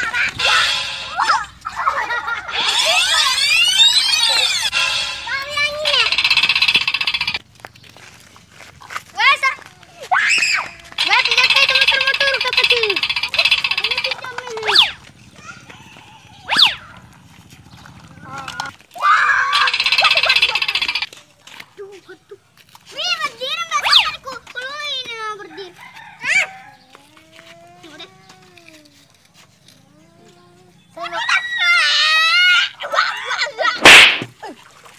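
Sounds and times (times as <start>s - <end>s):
high-pitched shrieks: 0.0s - 1.6s, 2.5s - 7.4s, 19.3s - 21.1s
children shouting and squealing: 0.0s - 7.4s, 8.8s - 21.1s, 22.9s - 34.6s.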